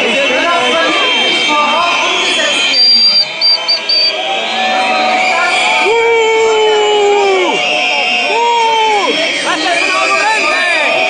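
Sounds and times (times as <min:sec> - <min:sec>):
crowd noise: 0:00.0 - 0:11.0
whistle blasts: 0:00.9 - 0:05.8.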